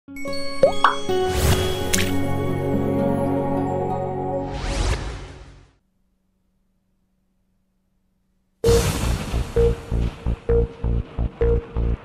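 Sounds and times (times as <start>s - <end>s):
rising plops: 0.6s - 1.1s.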